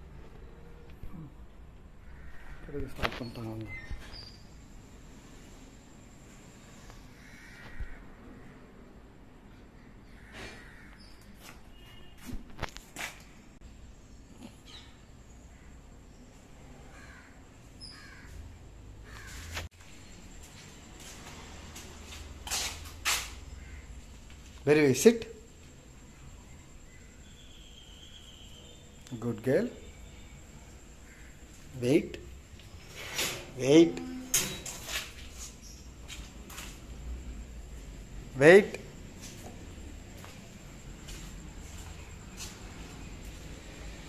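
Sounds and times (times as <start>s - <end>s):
low steady background noise: 0.0s - 44.0s.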